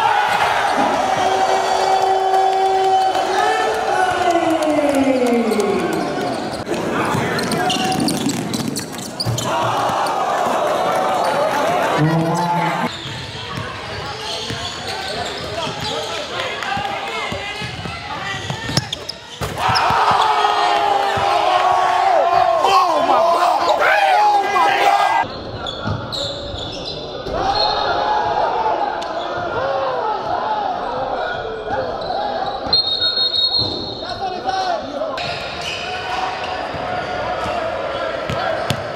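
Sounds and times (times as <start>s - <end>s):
voices of players and spectators: 0.0s - 38.9s
crowd shouting excitedly: 19.4s - 25.3s.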